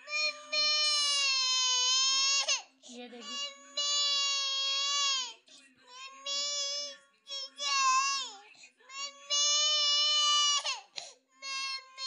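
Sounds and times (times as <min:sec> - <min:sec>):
toddler crying: 0:00.0 - 0:02.6, 0:03.2 - 0:12.0.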